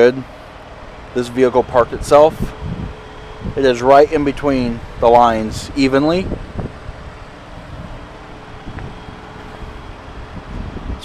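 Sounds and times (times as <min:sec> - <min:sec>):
wind buffeting microphone: 0:00.5 - 0:11.0.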